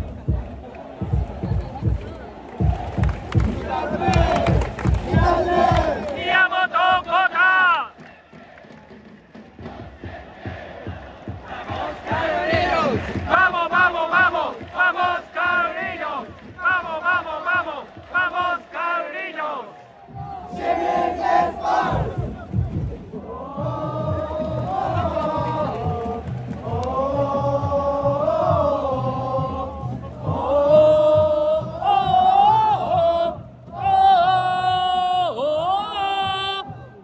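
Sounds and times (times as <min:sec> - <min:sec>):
crowd chanting in unison: 0:00.0 - 0:35.6.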